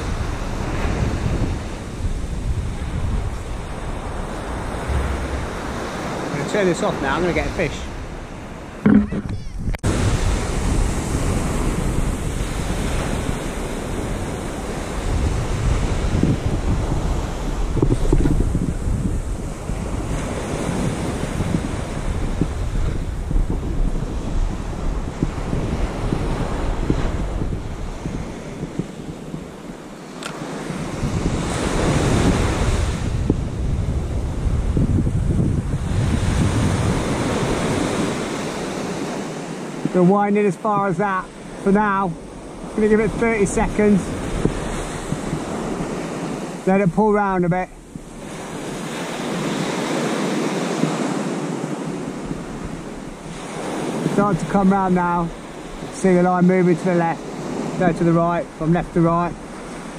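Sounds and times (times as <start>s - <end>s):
waves breaking on beach: 0.0s - 59.9s
wind rumbling on microphone: 0.0s - 59.9s.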